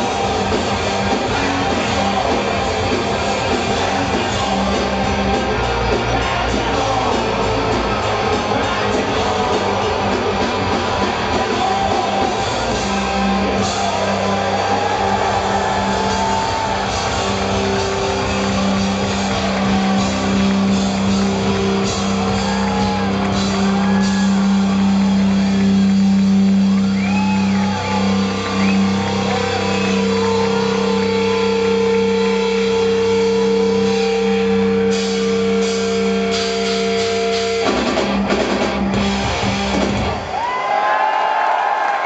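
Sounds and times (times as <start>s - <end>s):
distorted guitar chord drone: 0.0s - 27.0s, 27.8s - 40.2s
live heavy metal band: 0.0s - 41.0s.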